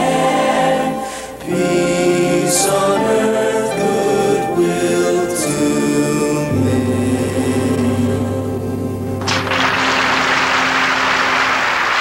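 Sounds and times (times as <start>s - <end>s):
audience applauding: 9.2s - 12.0s.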